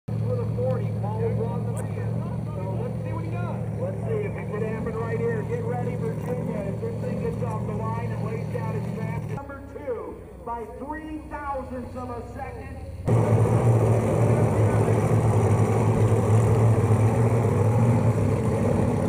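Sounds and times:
engine idling: 0.1s - 19.0s
people talking: 0.2s - 13.0s, 14.1s - 15.4s.

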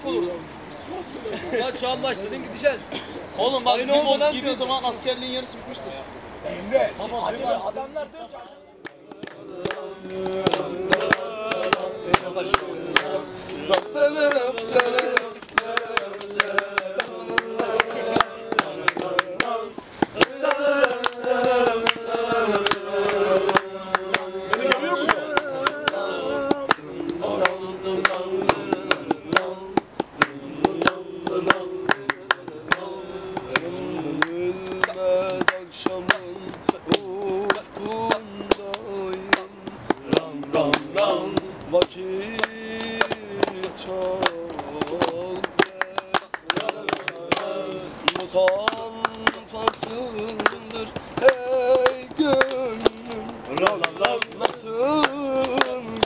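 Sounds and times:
young man singing unaccompanied: 8.6s - 56.0s
sharp knocks or claps: 8.8s - 56.0s.

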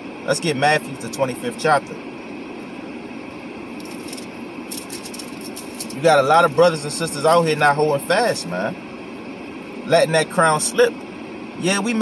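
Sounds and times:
car cabin hum: 0.0s - 12.0s
pages rustling: 3.8s - 6.0s.

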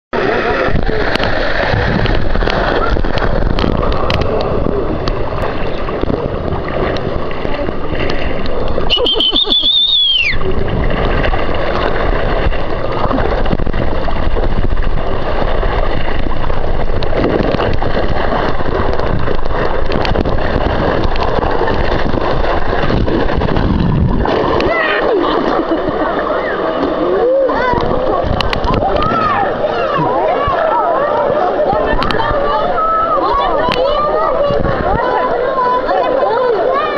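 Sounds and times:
water rushing down a water slide: 0.2s - 36.9s.

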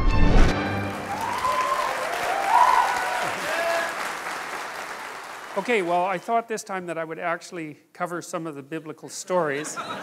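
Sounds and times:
audience cheering: 0.7s - 6.3s
audience applauding: 0.7s - 6.4s.

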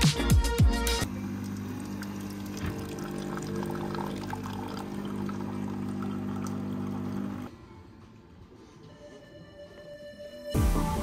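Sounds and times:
vending machine pump hum: 1.0s - 7.5s
coffee pouring into mug: 1.3s - 7.5s.

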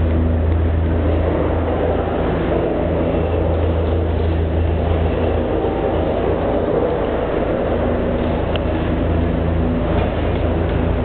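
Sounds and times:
low mechanical hum of machinery: 0.0s - 11.0s.

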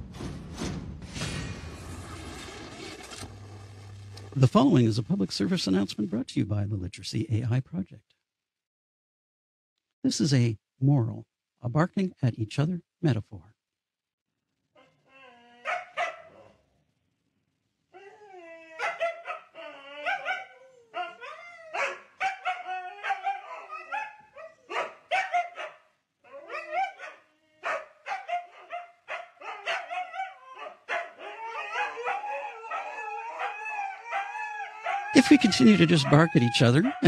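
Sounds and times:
dogs howling: 15.0s - 16.6s, 18.0s - 37.0s
dogs barking: 15.6s - 16.6s, 18.8s - 37.0s.

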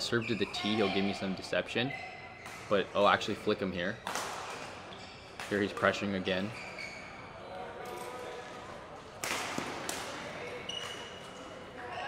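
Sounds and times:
rackets striking shuttlecock: 9.2s - 11.4s.

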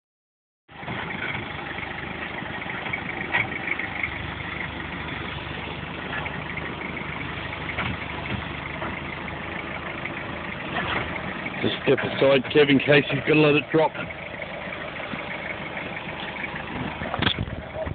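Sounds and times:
truck engine running: 0.7s - 17.9s.

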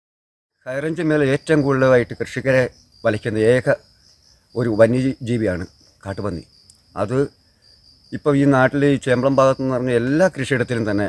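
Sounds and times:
man speaking: 0.7s - 3.8s, 4.6s - 7.3s, 8.1s - 11.0s
high-pitched insect drone: 0.7s - 11.0s.

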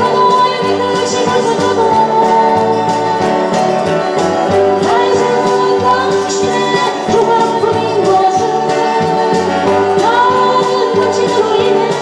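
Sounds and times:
strummed acoustic guitars: 0.0s - 12.0s
woman singing: 0.0s - 12.0s.

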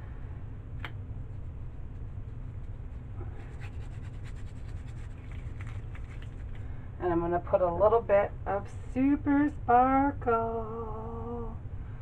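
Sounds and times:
steady low hum: 0.0s - 12.0s
gloved fingers rustling: 0.8s - 6.7s.

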